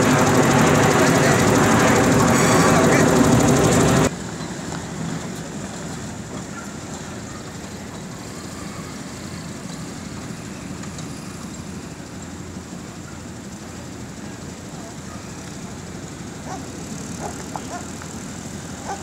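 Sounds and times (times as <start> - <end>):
voices: 0.0 - 4.1, 5.4 - 19.0
faint hum of cars driving: 0.0 - 19.0
loud engine noise: 0.0 - 19.0.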